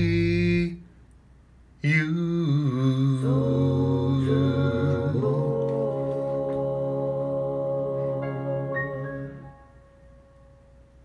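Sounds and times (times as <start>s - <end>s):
voice singing a long note: 1.8s - 9.7s.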